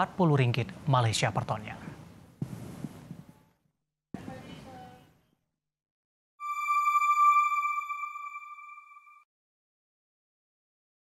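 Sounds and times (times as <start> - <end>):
high electronic ping: 6.4 - 9.2.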